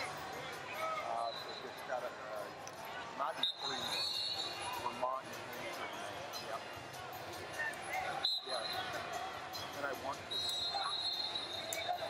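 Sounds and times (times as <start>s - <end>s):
voices and shouts echoing: 0.0s - 12.0s
high steady whistle: 3.4s - 4.6s, 8.2s - 8.9s, 10.3s - 12.0s.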